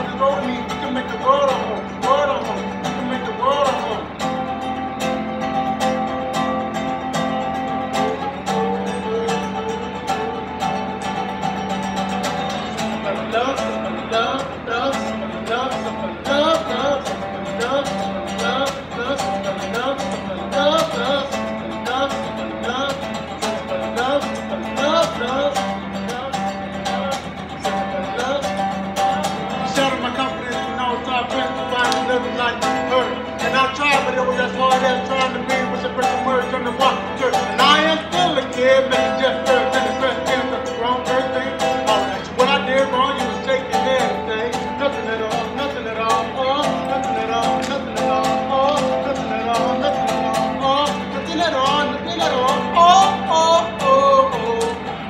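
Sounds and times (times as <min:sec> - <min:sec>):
acoustic guitar playing: 0:00.0 - 0:55.0.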